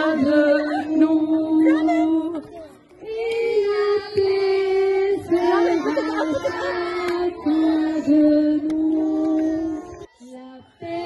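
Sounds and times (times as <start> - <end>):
children singing together: 0.0 - 11.0.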